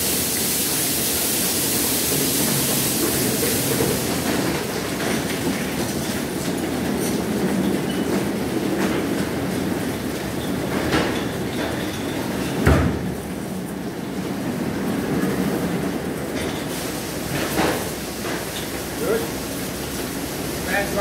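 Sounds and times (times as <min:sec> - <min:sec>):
loud high hiss: 0:00.0 - 0:04.2
car wash mechanical rumble: 0:00.0 - 0:21.0.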